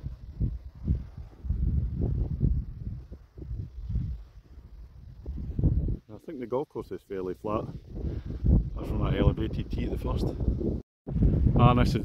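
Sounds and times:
wind buffeting microphone: 0.0s - 6.2s, 7.4s - 12.0s.

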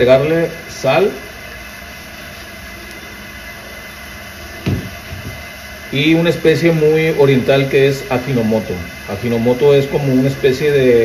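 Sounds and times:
gas burner rushing hiss: 0.0s - 11.0s.

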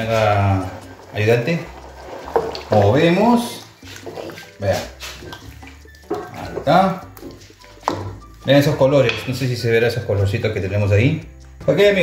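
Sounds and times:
vegetables sizzling in a wok: 0.0s - 5.5s
wooden spoon stirring: 0.0s - 10.6s.

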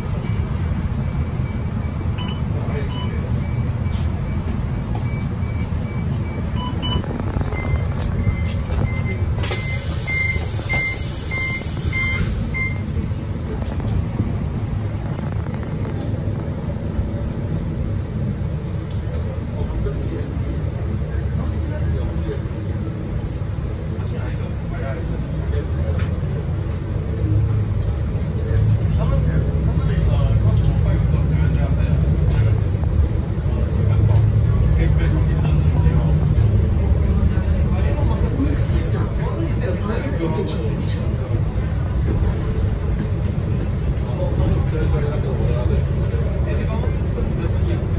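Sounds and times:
bus door warning beeps: 0.0s - 13.0s
bus diesel engine running: 0.0s - 47.9s.

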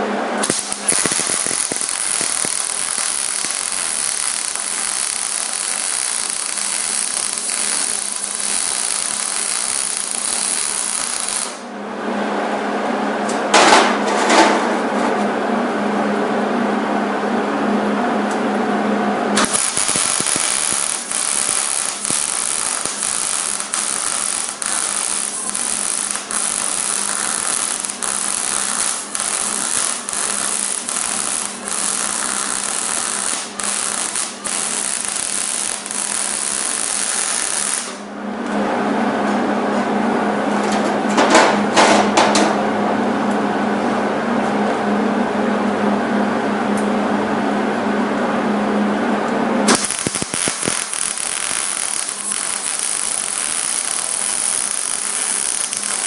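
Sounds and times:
welding arc sizzling and crackling: 0.4s - 11.7s, 19.4s - 38.1s, 49.7s - 56.0s.

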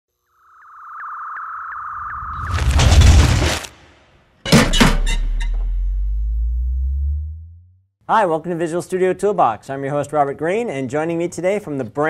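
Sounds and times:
short rising blips: 5.0s - 7.8s.

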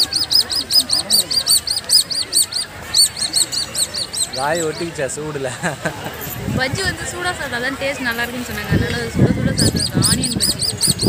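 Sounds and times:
rapid high-pitched chirps: 0.0s - 4.9s, 9.5s - 11.0s.

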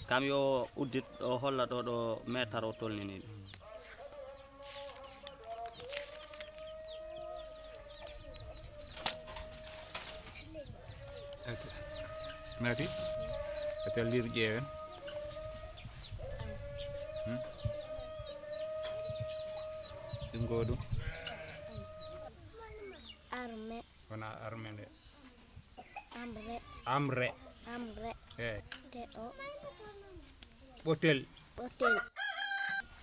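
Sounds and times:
small birds chirping: 0.1s - 32.0s
chickens clucking: 3.0s - 22.3s
farm animal bleating: 20.7s - 22.3s.

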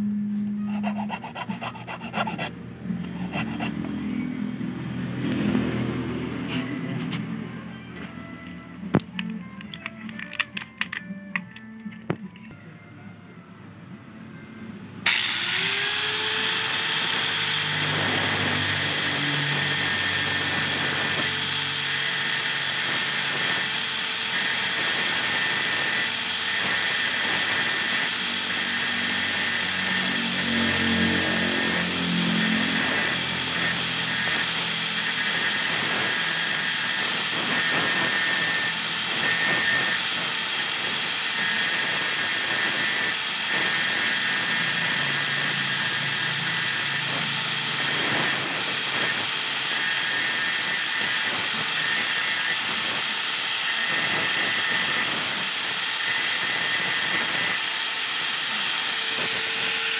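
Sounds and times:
angle grinder grinding metal: 0.0s - 4.5s, 15.0s - 59.9s.

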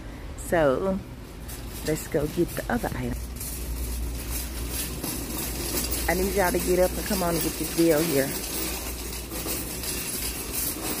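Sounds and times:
shopping cart rolling: 0.9s - 11.0s.

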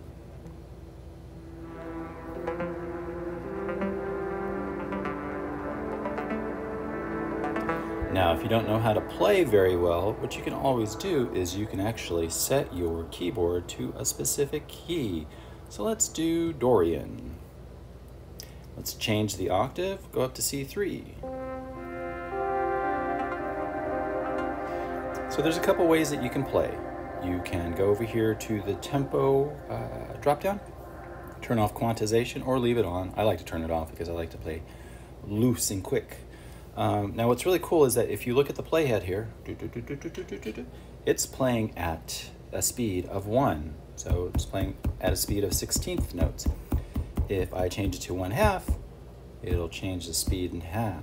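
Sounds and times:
sustained synth notes: 1.4s - 17.0s, 21.2s - 33.4s.

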